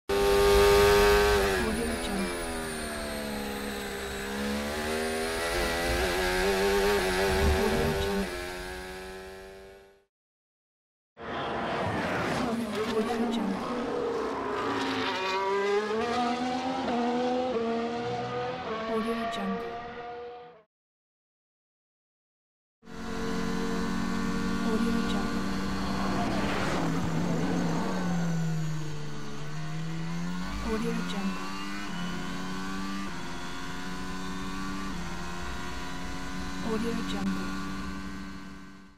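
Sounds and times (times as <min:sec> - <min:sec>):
racing engine at high revs: 0:00.0 - 0:10.1, 0:11.2 - 0:20.7, 0:22.8 - 0:38.9.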